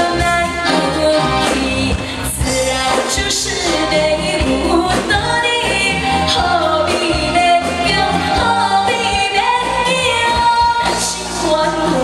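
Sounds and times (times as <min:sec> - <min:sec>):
live band with keyboards: 0:00.0 - 0:12.0
woman singing into microphone: 0:00.0 - 0:12.0.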